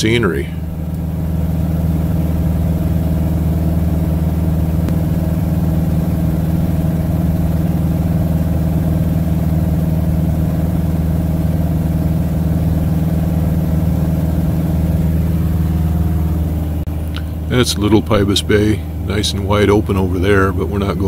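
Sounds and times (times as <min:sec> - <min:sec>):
propeller plane engine droning: 0:00.0 - 0:21.0.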